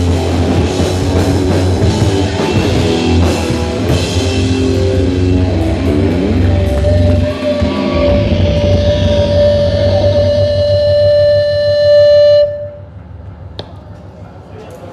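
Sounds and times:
live rock band: 0:00.0 - 0:12.5
held electric guitar note: 0:04.7 - 0:12.9.

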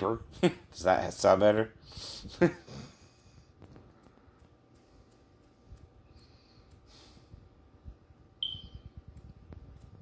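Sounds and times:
short high-pitched tone: 0:08.4 - 0:08.8.

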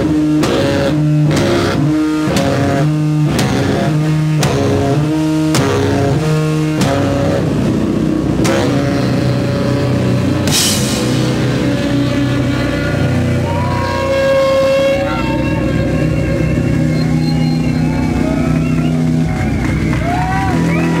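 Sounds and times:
jazz-metal band droning: 0:00.0 - 0:21.0
cymbal crash: 0:10.3 - 0:13.4.

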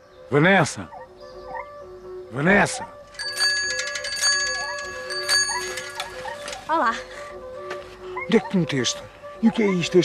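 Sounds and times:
bicycle bell ringing: 0:03.1 - 0:06.7.

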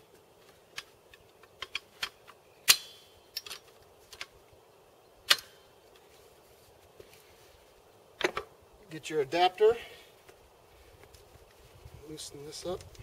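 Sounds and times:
metal tripod clicks and clanks: 0:00.7 - 0:04.3.

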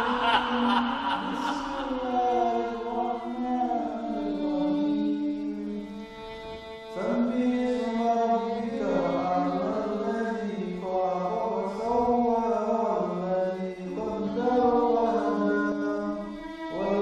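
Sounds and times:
person chanting: 0:00.0 - 0:06.0, 0:07.0 - 0:17.0
background music: 0:00.0 - 0:10.0.

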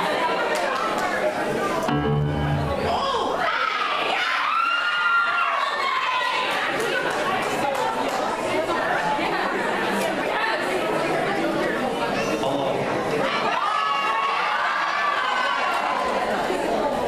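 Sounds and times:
crowd chattering and calling out: 0:00.0 - 0:17.0
high shouts: 0:02.6 - 0:06.7.

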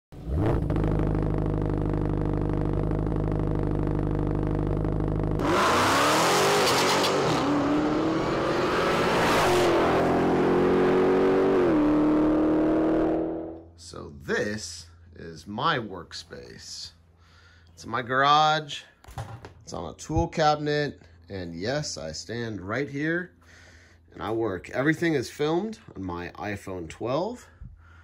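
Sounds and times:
car engine starting and revving: 0:00.2 - 0:13.6.

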